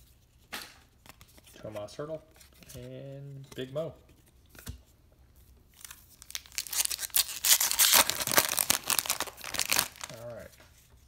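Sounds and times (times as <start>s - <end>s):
foil wrapper tearing and crinkling: 5.8s - 10.4s.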